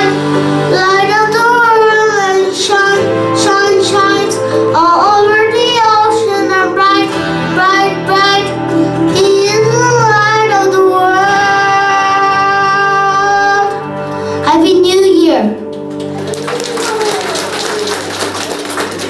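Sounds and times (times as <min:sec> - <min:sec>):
boy singing into a microphone: 0:00.0 - 0:15.2
instrumental accompaniment: 0:00.0 - 0:19.0.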